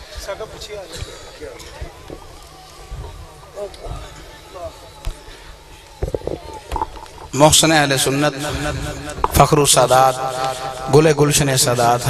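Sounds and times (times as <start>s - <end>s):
murmur of people talking: 0.0s - 12.0s.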